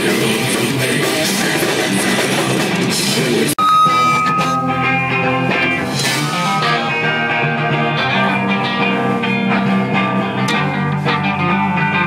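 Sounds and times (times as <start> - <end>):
distorted electric guitars: 0.0 - 12.0
drum kit: 0.0 - 12.0
clean music with held notes: 3.6 - 12.0.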